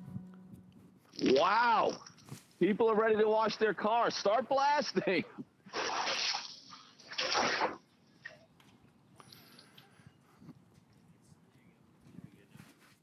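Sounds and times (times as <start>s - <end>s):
hose nozzle spraying water: 5.7s - 7.8s.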